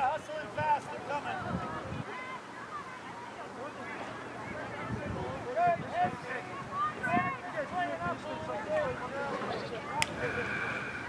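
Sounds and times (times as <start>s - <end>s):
distant voices calling out: 0.0s - 11.0s
steady outdoor hiss: 0.0s - 11.0s.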